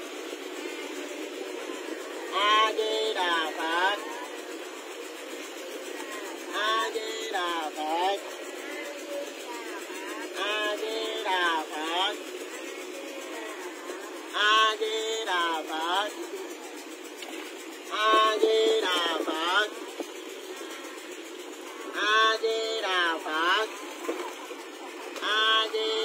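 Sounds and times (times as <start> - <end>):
people speaking: 0.0 - 26.0
steady background noise: 0.0 - 26.0
steady low drone: 0.0 - 26.0.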